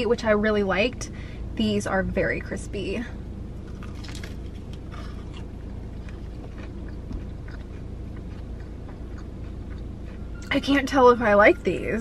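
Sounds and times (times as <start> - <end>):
low car cabin hum: 0.0 - 12.0
crunching bites of fried chicken: 3.6 - 10.2.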